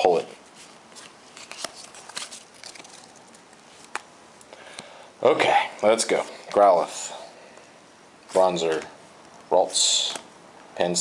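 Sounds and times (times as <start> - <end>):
cards rustling: 0.5 - 4.1, 8.3 - 9.0.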